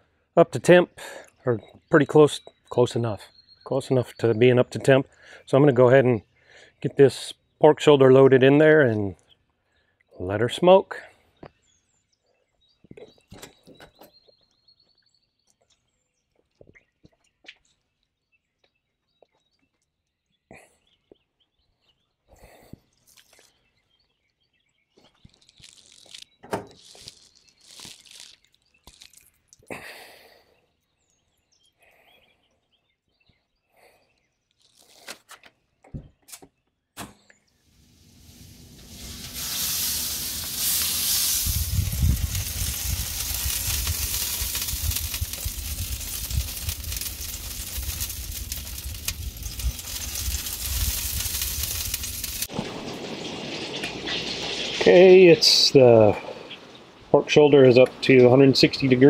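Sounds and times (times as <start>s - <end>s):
wind buffeting microphone: 40.0s - 54.7s.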